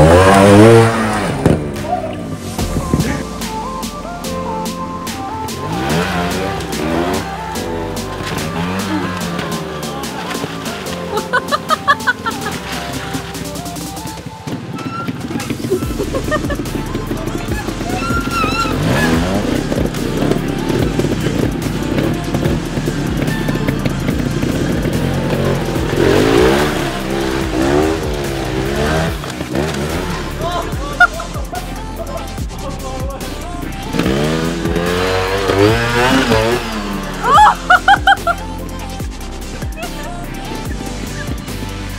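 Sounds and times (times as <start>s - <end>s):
background music: 0.0s - 41.9s
motorcycle engines revving: 0.0s - 41.9s.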